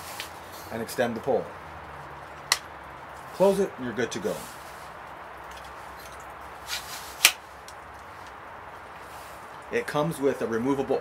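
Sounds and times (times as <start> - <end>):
steady outdoor hiss: 0.0 - 11.0
pole sliding rub: 6.6 - 7.3.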